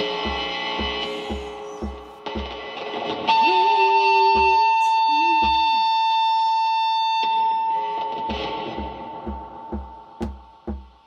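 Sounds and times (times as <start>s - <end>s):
low kick drum beat: 0.0s - 2.6s, 4.3s - 4.7s, 5.4s - 5.8s, 8.7s - 11.0s.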